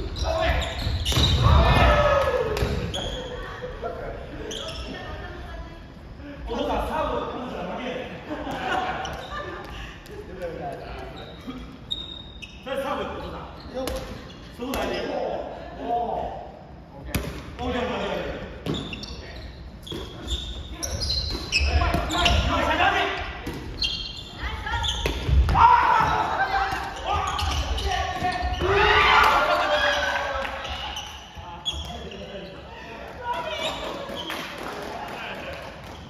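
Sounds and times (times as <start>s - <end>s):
volleyball slaps and thuds: 0.8s - 2.9s, 23.4s - 23.8s.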